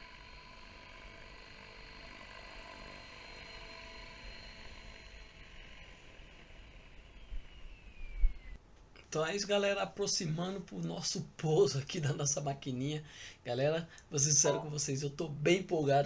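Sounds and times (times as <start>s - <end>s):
model helicopter motor whine: 0.0s - 8.6s.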